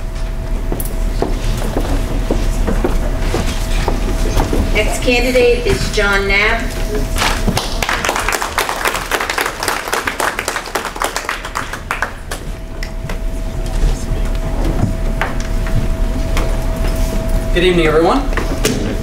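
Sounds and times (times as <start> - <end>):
room noise: 0.0 - 19.0
audience applauding: 7.2 - 12.9.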